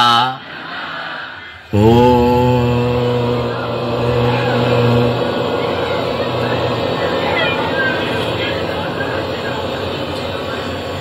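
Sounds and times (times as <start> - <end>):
man chanting over loudspeaker: 0.0 - 0.6, 1.6 - 11.0
background hubbub: 0.4 - 11.0.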